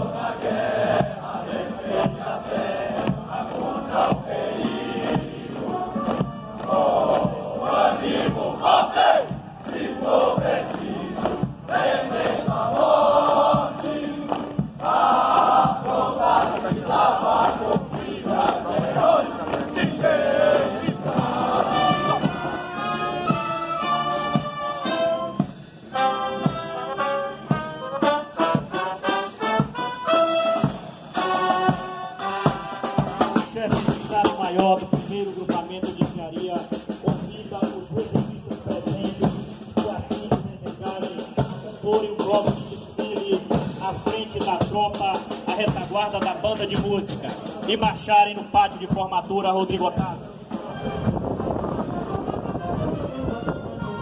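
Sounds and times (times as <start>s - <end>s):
soldiers singing in unison: 0.0s - 25.3s
brass band playing a march: 0.0s - 54.0s.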